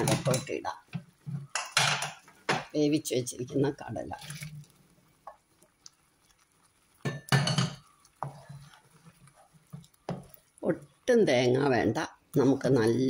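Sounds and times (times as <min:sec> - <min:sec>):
bowl clattering against pan: 0:00.0 - 0:02.7, 0:07.0 - 0:08.7
wet dripping and plopping: 0:04.1 - 0:11.1.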